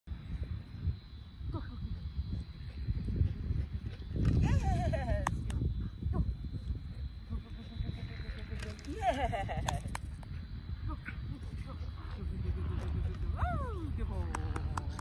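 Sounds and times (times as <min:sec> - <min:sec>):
wind rumbling on microphone: 0:00.1 - 0:15.0.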